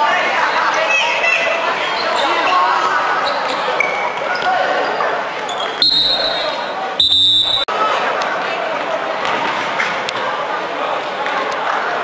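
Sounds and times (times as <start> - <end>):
players' voices and shouts: 0.0 - 12.0
referee's whistle: 5.5 - 7.7.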